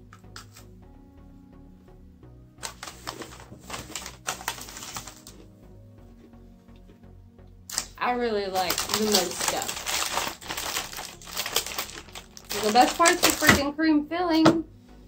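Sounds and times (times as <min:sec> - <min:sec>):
soft background music: 0:00.0 - 0:15.0
plastic package crinkling: 0:02.6 - 0:05.4, 0:07.7 - 0:13.6
cookies crunching: 0:02.6 - 0:05.5, 0:07.7 - 0:13.6.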